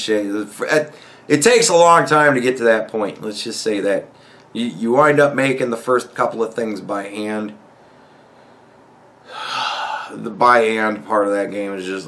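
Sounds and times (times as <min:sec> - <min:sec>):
man breathing heavily: 0:07.8 - 0:10.2.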